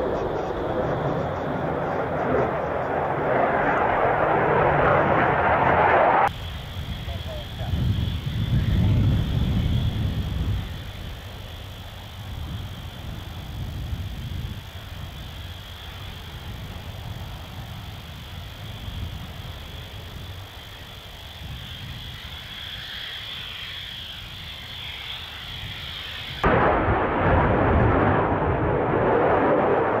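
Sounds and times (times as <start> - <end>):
jet engine rumble: 0.0 - 30.0
harsh rushing noise: 1.6 - 6.3.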